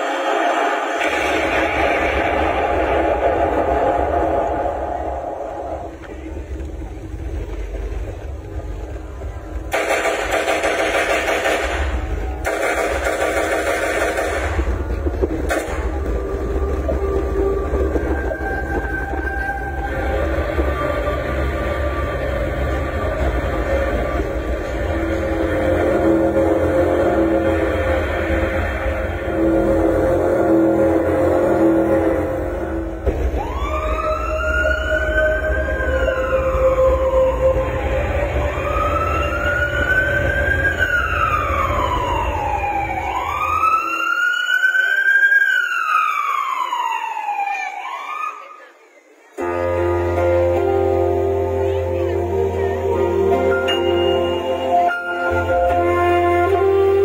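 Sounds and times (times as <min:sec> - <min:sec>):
rushing noise: 0:00.0 - 0:44.0
siren-like wail: 0:14.8 - 0:48.8.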